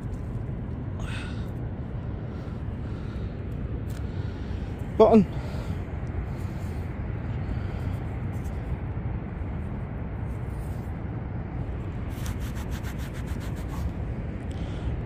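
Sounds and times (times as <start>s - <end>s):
low rumble: 0.0s - 12.4s.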